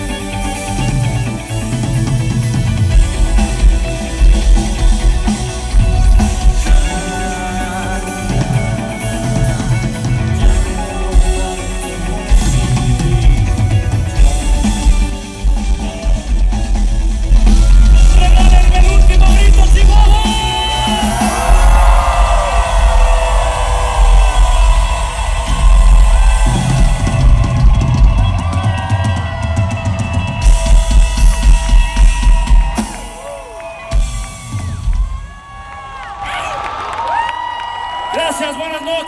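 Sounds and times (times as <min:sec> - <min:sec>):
crowd noise: 0:00.0 - 0:39.0
electronic pop band playing: 0:00.0 - 0:39.0.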